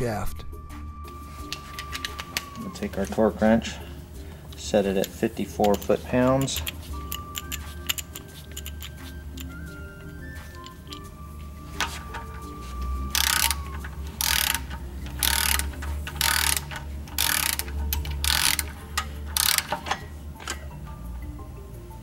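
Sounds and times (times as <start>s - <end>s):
background music: 0.0s - 22.0s
torque wrench ratchet clicking: 4.5s - 9.6s, 13.1s - 20.7s.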